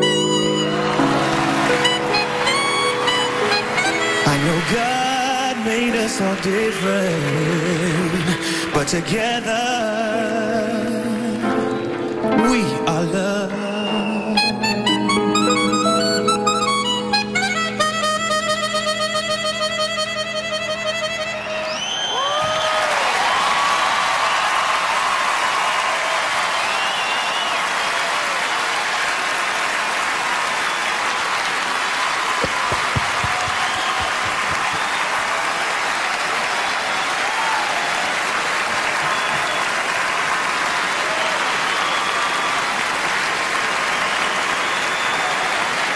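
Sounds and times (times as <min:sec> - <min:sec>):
crowd cheering: 0:00.0 - 0:09.0, 0:21.4 - 0:45.9
audience applauding: 0:00.0 - 0:10.0, 0:21.6 - 0:45.9.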